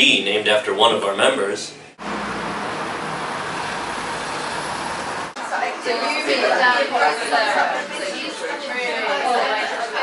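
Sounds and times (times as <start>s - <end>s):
road traffic rumble: 1.9s - 5.4s.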